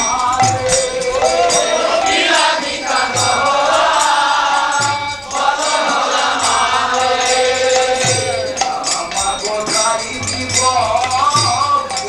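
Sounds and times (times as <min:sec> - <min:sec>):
devotional chanting: 0:00.0 - 0:12.0.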